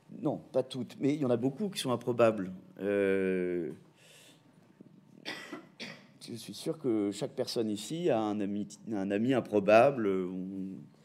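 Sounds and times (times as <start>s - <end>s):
person coughing: 5.2s - 6.2s.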